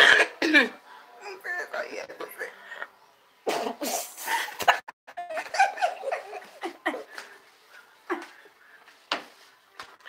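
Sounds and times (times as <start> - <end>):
woman laughing hard: 4.4 - 7.2.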